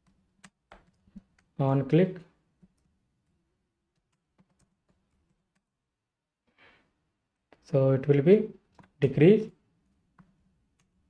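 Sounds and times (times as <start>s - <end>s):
computer keyboard keystroke: 0.0s - 1.5s, 3.9s - 5.7s
person speaking: 1.5s - 2.4s, 7.6s - 9.6s.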